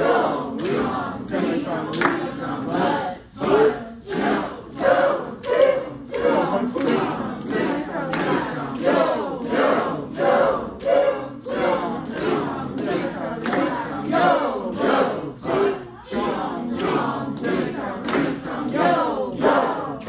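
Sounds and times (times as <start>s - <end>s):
group chanting rhythm syllables: 0.0s - 20.0s.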